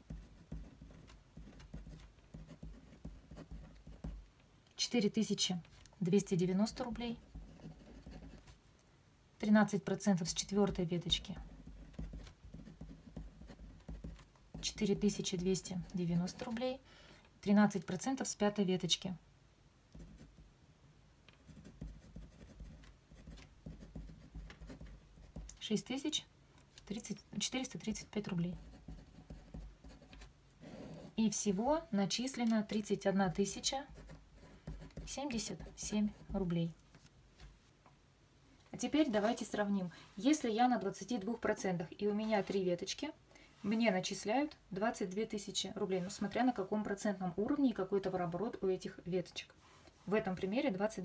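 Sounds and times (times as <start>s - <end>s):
ballpoint pen scratching paper: 0.0s - 4.2s, 7.0s - 8.5s, 10.7s - 14.9s, 21.4s - 25.5s, 28.4s - 31.2s, 33.6s - 36.5s.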